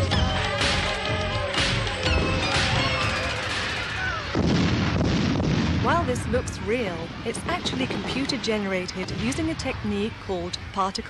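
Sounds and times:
electronic music with synth tones: 0:00.0 - 0:04.2
fireworks booming: 0:04.0 - 0:09.9.

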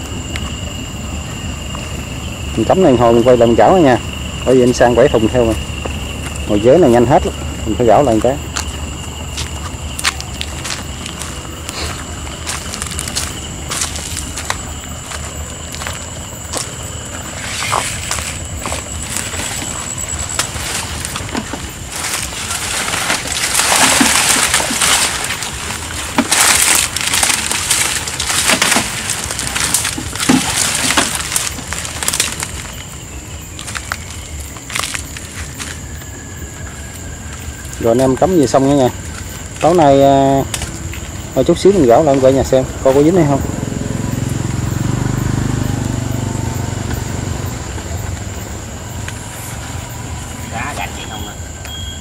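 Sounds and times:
night insects droning: 0:00.0 - 0:52.0
leaves rustling and crackling: 0:04.4 - 0:42.5.

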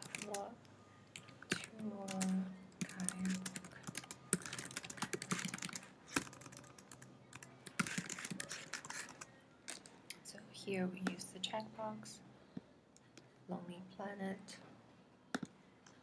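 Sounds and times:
keyboard typing: 0:00.0 - 0:00.5, 0:01.1 - 0:09.9.

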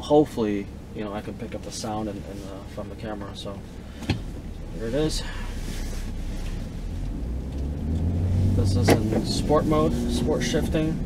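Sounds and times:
engine and road drone in car: 0:00.0 - 0:11.0.

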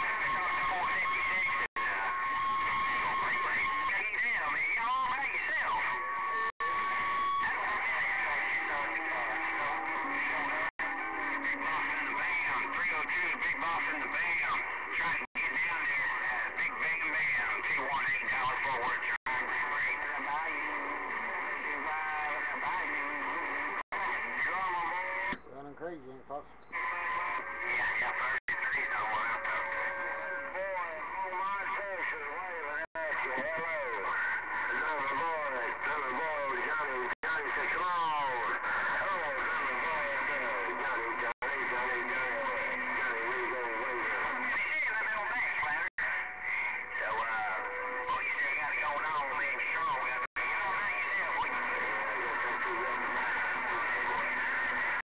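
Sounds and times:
garbled radio voices: 0:00.0 - 0:55.0
radio band noise: 0:00.0 - 0:55.0.

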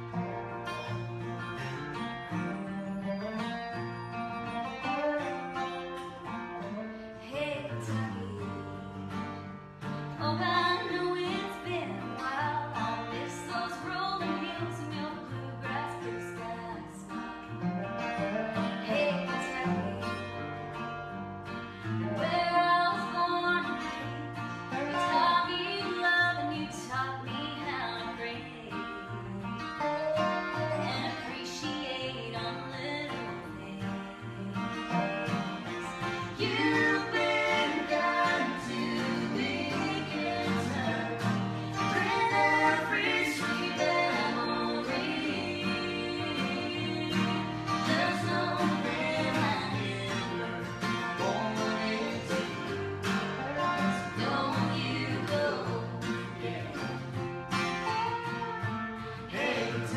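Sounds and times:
acoustic guitars and mandolin playing: 0:00.0 - 0:59.9.

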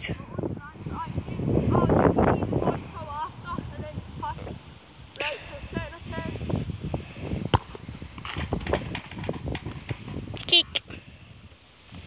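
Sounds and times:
wind buffeting microphone: 0:00.0 - 0:12.0
football kicked: 0:07.4 - 0:08.7.

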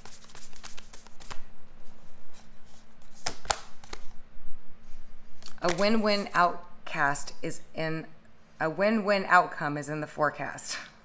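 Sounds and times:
cards being shuffled: 0:00.0 - 0:04.2, 0:05.4 - 0:06.4
card snaps: 0:03.2 - 0:04.1.

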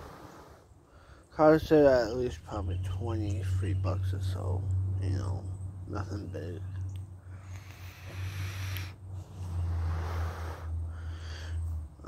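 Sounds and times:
airy hiss of vape drag: 0:00.0 - 0:00.7, 0:07.5 - 0:09.0
breathy exhale: 0:00.0 - 0:01.3, 0:07.2 - 0:11.8
steady low hum: 0:00.0 - 0:12.0.

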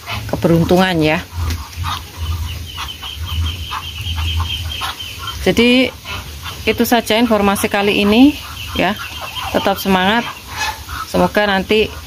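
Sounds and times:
low rumble: 0:00.0 - 0:09.4
ducks chirping softly: 0:00.0 - 0:12.0.

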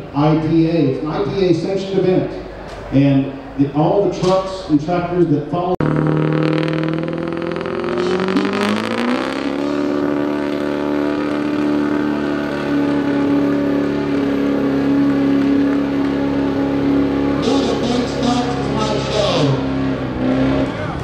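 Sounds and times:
diesel truck engine at full throttle: 0:05.8 - 0:21.0.

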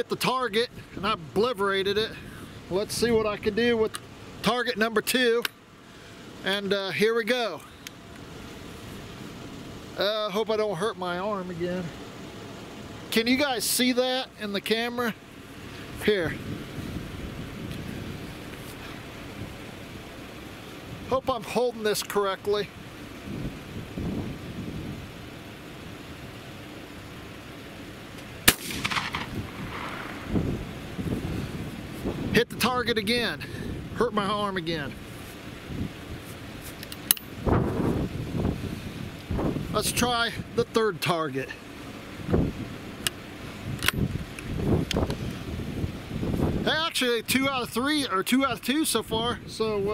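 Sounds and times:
outdoor background hiss: 0:00.0 - 0:49.9
wind buffeting microphone: 0:16.2 - 0:18.5, 0:23.2 - 0:25.3, 0:28.5 - 0:36.2, 0:37.3 - 0:40.6, 0:42.2 - 0:42.8, 0:43.5 - 0:46.9
shotgun breaking open click: 0:28.5 - 0:30.1.

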